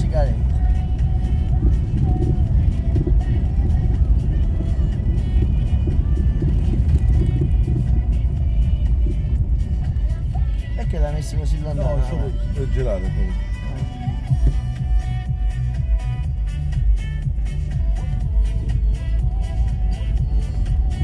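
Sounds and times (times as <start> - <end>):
car rumbling over cobblestones: 0.0 - 21.0
music playing: 0.0 - 21.0.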